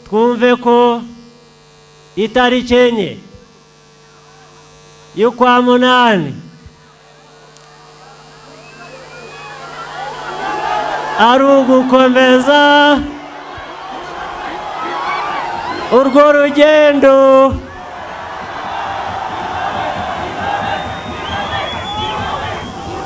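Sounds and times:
low electrical hum: 0:00.0 - 0:23.0
crowd calling out and cheering: 0:06.6 - 0:23.0.

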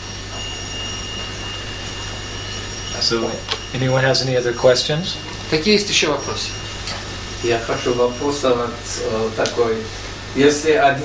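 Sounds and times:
faint high-pitched whine: 0:00.0 - 0:11.0
low hum: 0:00.0 - 0:11.0
steady tape hiss: 0:00.0 - 0:11.0.

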